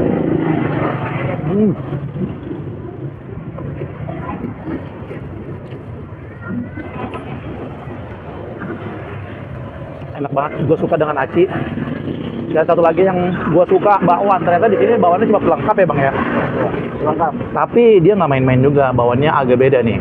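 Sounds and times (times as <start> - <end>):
roadside traffic noise: 0.0 - 20.0
vehicle engine hum: 0.0 - 20.0
voice murmur: 4.0 - 8.8.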